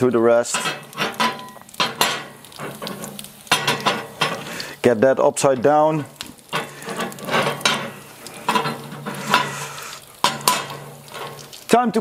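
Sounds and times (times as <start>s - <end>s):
food sizzling on grill: 0.0s - 12.0s
waffle iron clanking on grill grate: 0.5s - 4.6s, 5.4s - 11.7s.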